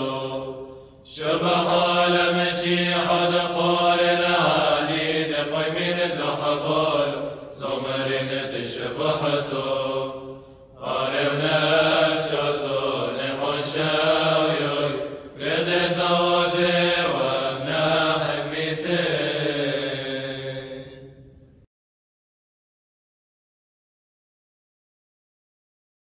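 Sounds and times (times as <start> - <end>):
men chanting: 0.0 - 21.1.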